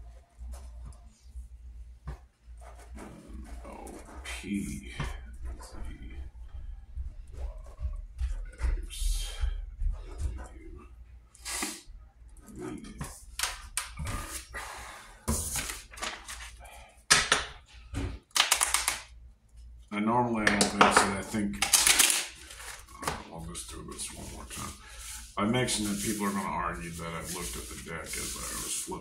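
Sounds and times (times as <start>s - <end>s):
playing cards riffle-shuffled: 18.3s - 19.1s, 21.2s - 23.3s, 24.0s - 29.0s.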